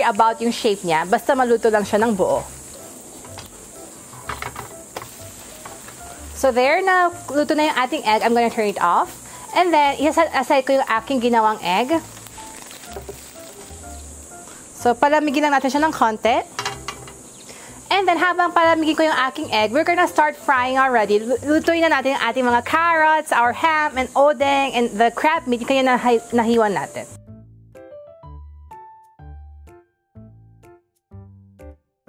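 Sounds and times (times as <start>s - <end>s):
egg sizzling: 0.0s - 27.2s.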